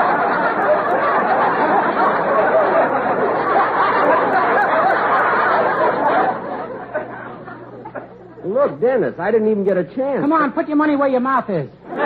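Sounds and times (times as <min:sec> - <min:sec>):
studio audience laughing: 0:00.0 - 0:08.7.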